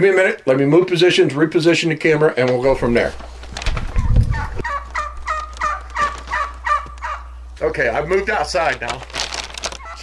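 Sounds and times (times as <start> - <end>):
poultry calling: 3.9 - 7.5, 9.6 - 10.0.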